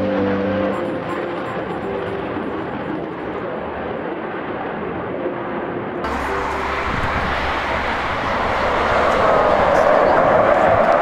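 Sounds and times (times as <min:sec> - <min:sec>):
fighter jet engine rumble: 0:00.0 - 0:11.0.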